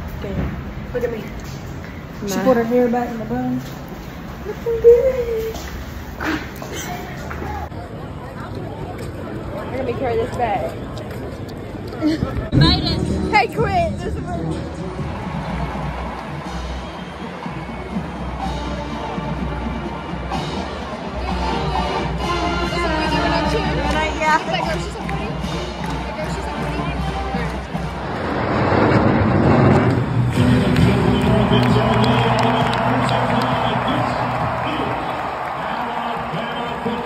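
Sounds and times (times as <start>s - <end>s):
marching band playing: 12.6s - 37.0s
large crowd cheering: 14.4s - 37.0s.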